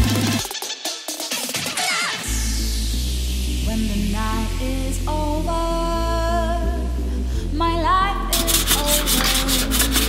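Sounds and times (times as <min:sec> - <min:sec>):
background music: 0:00.0 - 0:10.0
sandpaper scratching: 0:08.3 - 0:10.0.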